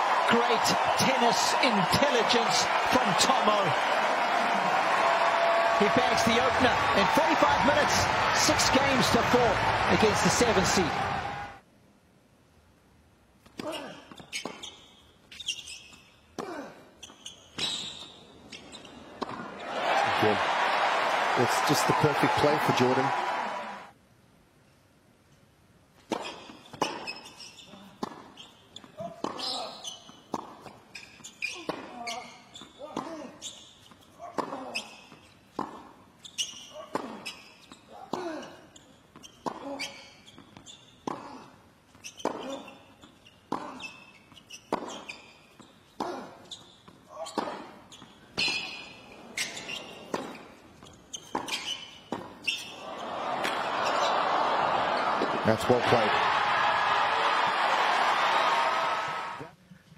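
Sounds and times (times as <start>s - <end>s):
crowd noise: 0.0s - 11.6s, 19.0s - 23.9s, 52.7s - 59.6s
racket striking tennis ball: 44.7s - 45.1s.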